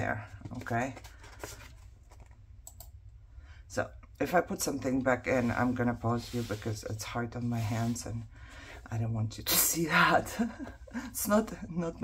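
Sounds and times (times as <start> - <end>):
paper rustling: 0.3 - 2.4.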